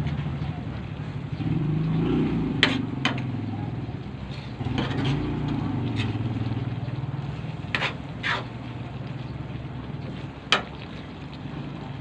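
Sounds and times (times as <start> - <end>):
low engine-like hum: 0.0 - 12.0
spatula scraping a pan: 2.6 - 3.3, 4.2 - 6.6, 7.2 - 8.8.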